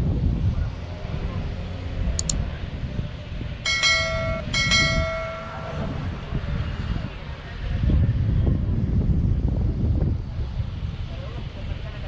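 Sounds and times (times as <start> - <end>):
traffic rumble: 0.0 - 12.0
wind: 0.0 - 12.0.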